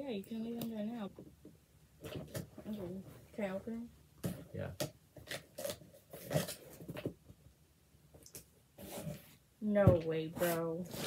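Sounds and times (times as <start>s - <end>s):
cardboard rustling and scraping: 8.8s - 9.4s.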